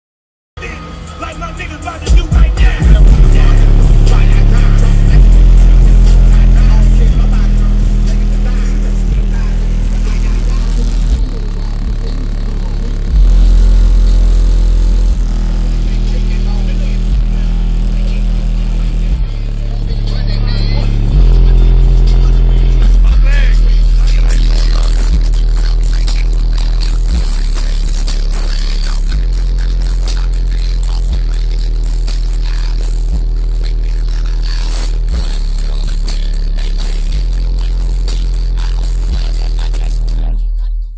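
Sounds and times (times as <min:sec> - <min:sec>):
bass-heavy hip-hop music: 0:00.6 - 0:40.9
deep bass notes: 0:00.6 - 0:40.9
rapping vocals: 0:00.6 - 0:40.9.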